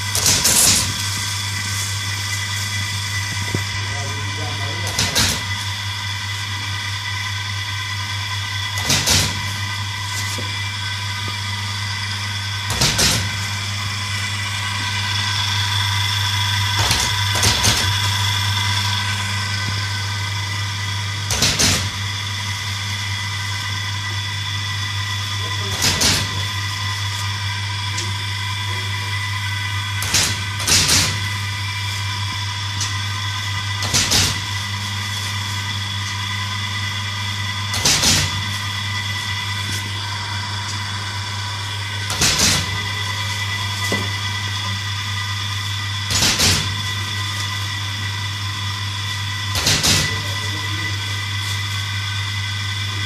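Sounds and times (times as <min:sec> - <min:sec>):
punch machine electric hum: 0:00.0 - 0:53.0.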